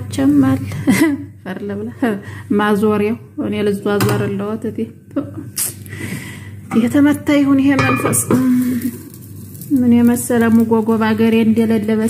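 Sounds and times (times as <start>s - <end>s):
person talking: 6.7s - 8.9s.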